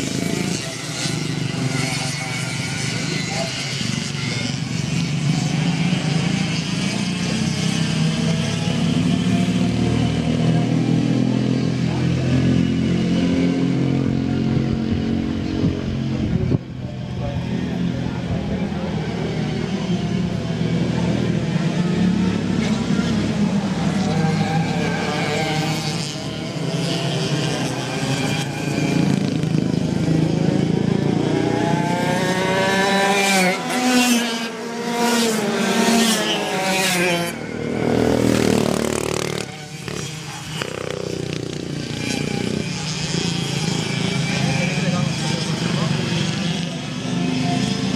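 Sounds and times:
racing kart engines revving: 0.0s - 47.9s.

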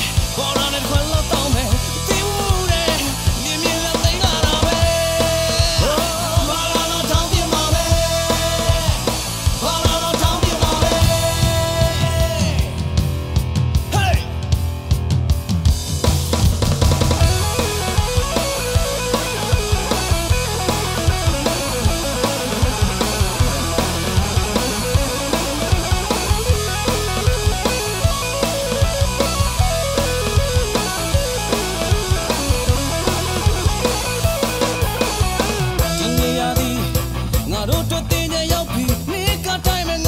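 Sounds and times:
pop-rock band music: 0.0s - 40.0s.

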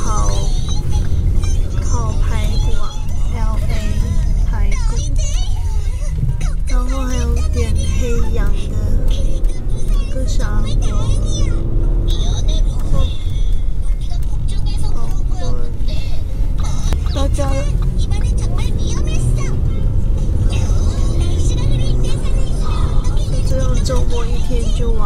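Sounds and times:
person speaking: 0.0s - 1.0s
car engine and tyres rumbling: 0.0s - 25.0s.

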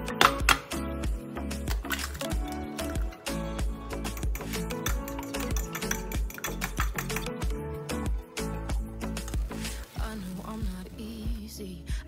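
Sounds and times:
song with steady beat: 0.0s - 12.0s
fork clicking against glass bowl: 4.0s - 7.4s.

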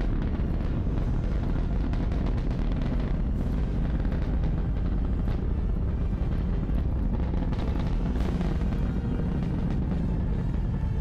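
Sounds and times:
rocket engine roar: 0.0s - 11.0s.

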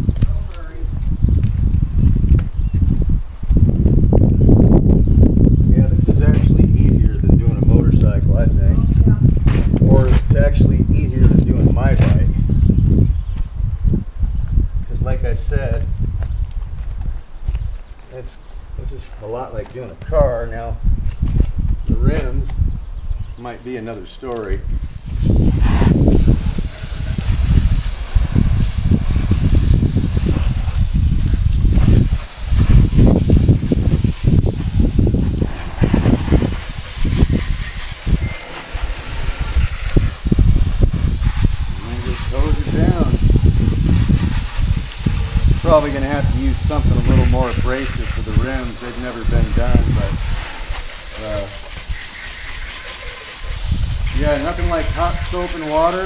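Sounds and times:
water spraying from hose: 24.6s - 56.0s.

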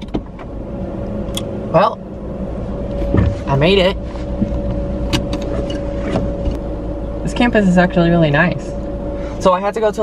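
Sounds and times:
car rumble inside cabin: 0.0s - 10.0s
faint steady hum: 0.3s - 10.0s.

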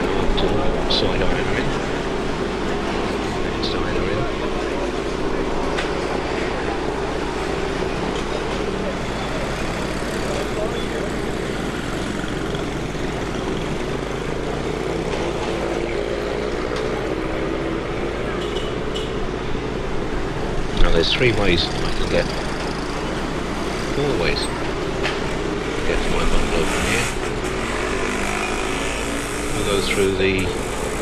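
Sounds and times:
indistinct voices: 0.0s - 18.9s, 20.6s - 23.1s, 23.8s - 24.8s, 25.8s - 31.0s
cars and scooters on road: 0.0s - 31.0s.

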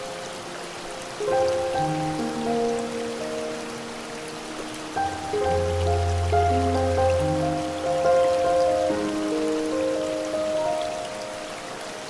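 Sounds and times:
soft piano chords: 0.0s - 12.0s
waterfall rushing: 0.0s - 12.0s.

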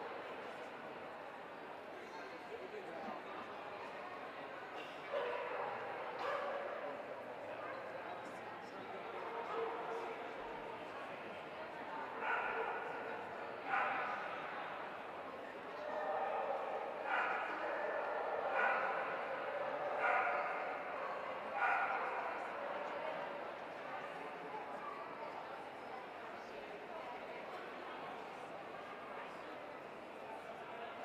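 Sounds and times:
murmur of crowd: 0.0s - 31.0s
dog barking in echoing hall: 5.1s - 7.1s, 12.1s - 14.3s, 15.8s - 22.6s.

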